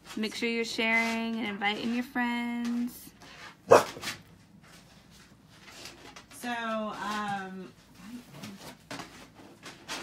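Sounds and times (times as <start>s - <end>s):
dog barking: 3.7s - 4.0s.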